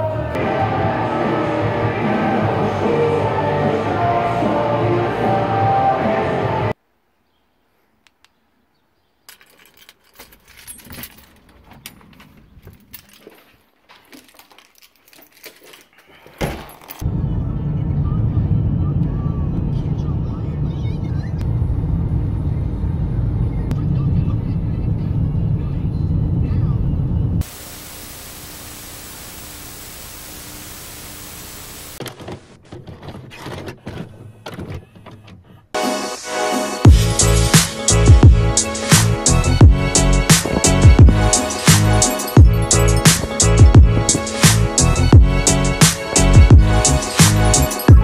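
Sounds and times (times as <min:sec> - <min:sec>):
background music: 0:00.0 - 0:06.8, 0:35.8 - 0:48.0
car road and engine noise: 0:17.0 - 0:27.5.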